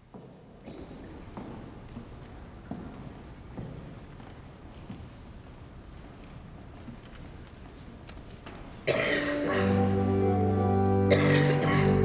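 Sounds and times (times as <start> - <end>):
pipe organ playing: 9.4 - 12.0.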